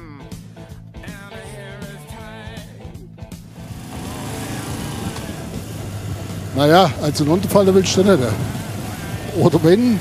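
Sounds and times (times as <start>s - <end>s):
music with guitar and singing: 0.0s - 10.0s
motorcycle engine running: 3.3s - 10.0s
wind noise: 4.7s - 9.4s.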